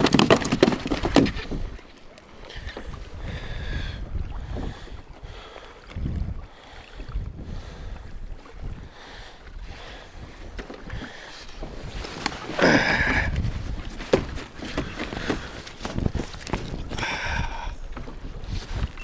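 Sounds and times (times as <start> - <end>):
water lapping at a kayak: 0.0 - 19.0
wind buffeting microphone: 2.5 - 19.0
handling scrapes and rustles: 11.4 - 12.6.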